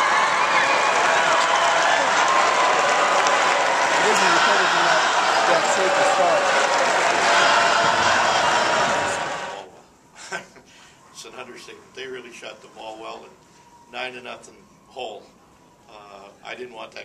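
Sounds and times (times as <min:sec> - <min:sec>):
applause: 0:00.0 - 0:09.6
crowd cheering and shouting: 0:00.0 - 0:09.7.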